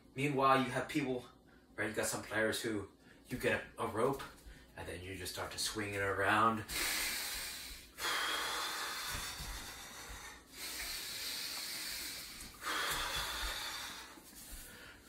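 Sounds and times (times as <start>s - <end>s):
man's hissing breaths: 6.7s - 15.0s.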